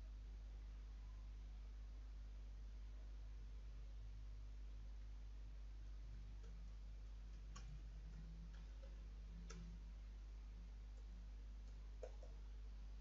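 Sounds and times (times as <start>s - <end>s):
low electrical hum: 0.0s - 13.0s
computer keyboard clicks: 6.4s - 9.8s, 10.9s - 12.4s.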